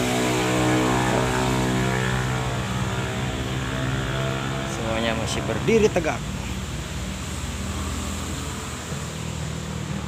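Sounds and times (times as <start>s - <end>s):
engine idling: 0.0s - 7.8s.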